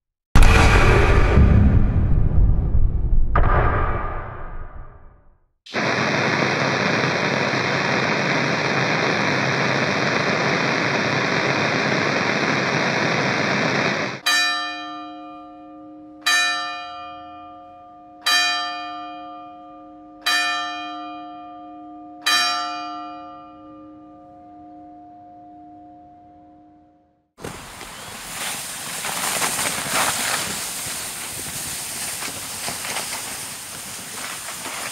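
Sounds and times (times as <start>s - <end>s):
radio static hiss: 5.7s - 14.2s, 27.5s - 34.9s
church clock bell striking: 14.2s - 26.1s.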